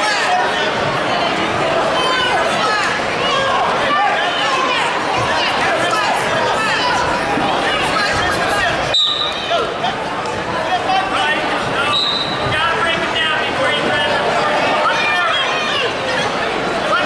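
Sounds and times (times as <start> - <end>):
crowd shouting in a gym: 0.0 - 17.0.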